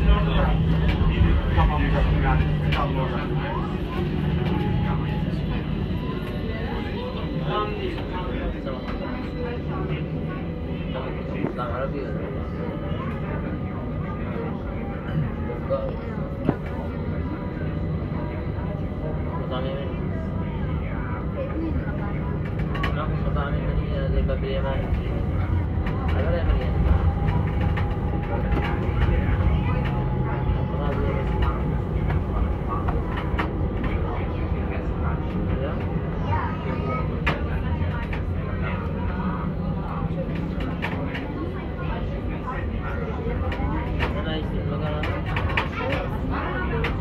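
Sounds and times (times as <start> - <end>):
chatter of passers-by: 0.0 - 47.0
low rumble of traffic: 20.0 - 47.0.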